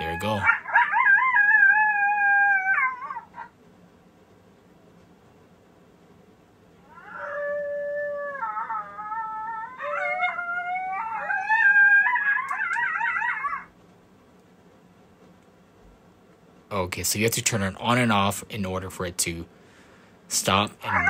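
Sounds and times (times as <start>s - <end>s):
coyote howls through speaker: 0.0s - 3.5s, 6.8s - 13.7s, 20.4s - 21.0s.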